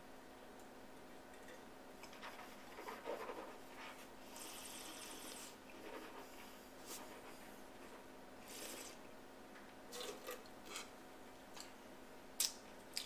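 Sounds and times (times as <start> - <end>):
soft airy breath hiss: 3.5 - 9.2.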